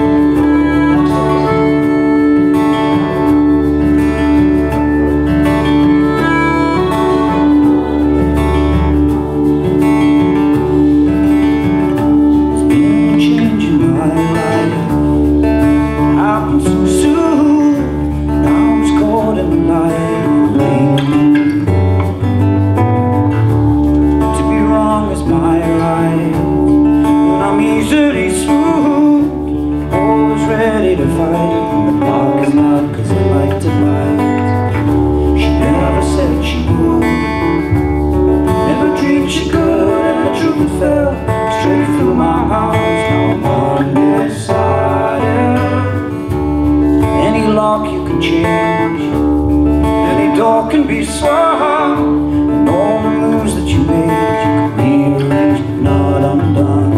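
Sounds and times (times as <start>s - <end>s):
button accordion: 0.0s - 12.6s
fiddle: 0.0s - 37.7s
acoustic guitars strumming: 0.0s - 56.9s
bass line: 0.0s - 56.9s
drums: 0.0s - 56.9s.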